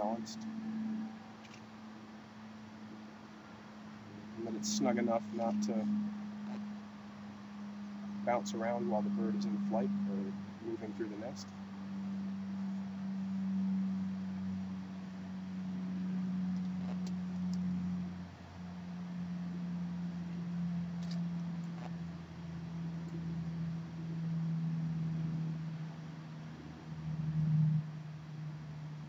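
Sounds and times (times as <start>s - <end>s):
low hum: 0.0s - 29.0s.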